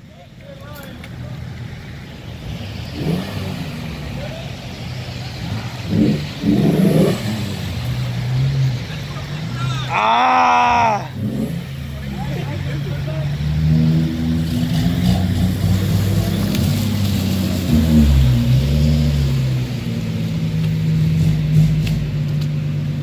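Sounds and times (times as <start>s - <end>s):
car engines running at low revs: 0.0s - 23.0s.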